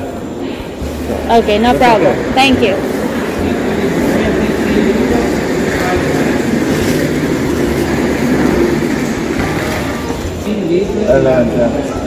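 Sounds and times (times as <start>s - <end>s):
railway station hall rumble: 0.0s - 10.6s.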